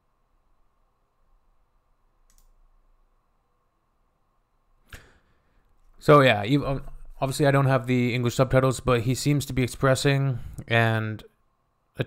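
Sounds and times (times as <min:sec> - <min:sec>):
click: 0:02.2 - 0:02.6.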